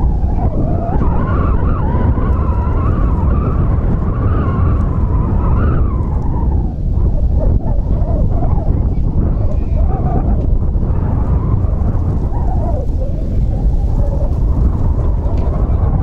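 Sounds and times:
wind rumbling on microphone: 0.0 - 16.0.

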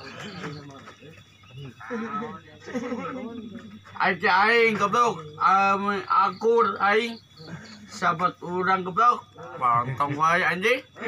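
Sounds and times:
man talking: 4.0 - 11.0.

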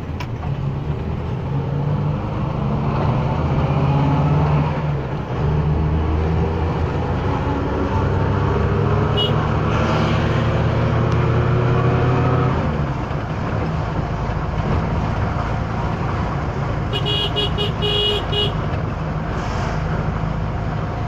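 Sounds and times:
engine and road drone: 0.0 - 21.0
car horn toots: 9.1 - 9.5, 16.9 - 18.7.

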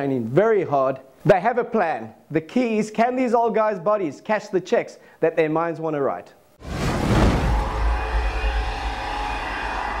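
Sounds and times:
rushing noise with deep rumble: 6.6 - 9.9.

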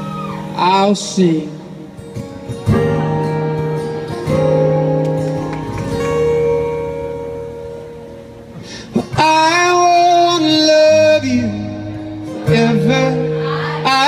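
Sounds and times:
acoustic guitar chords: 0.0 - 14.0.

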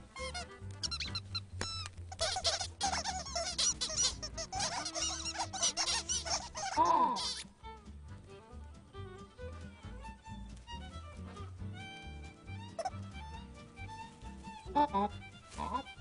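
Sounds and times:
light background music: 0.0 - 16.0
cartoon birds chirping: 2.2 - 7.5.

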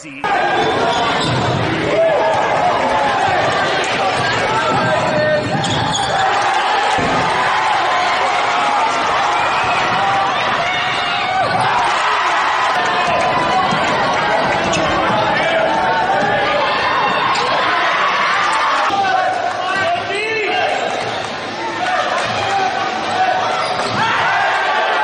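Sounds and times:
crowd voices echoing: 0.0 - 25.0.

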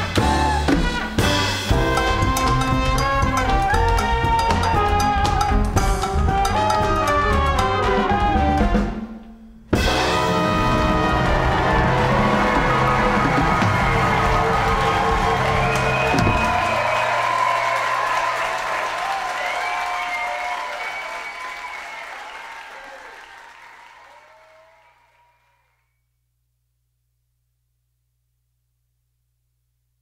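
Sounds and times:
audience applause and cheering: 0.0 - 8.8, 9.8 - 25.8
jazz band holding chord: 0.0 - 17.2
drums: 0.0 - 23.4.

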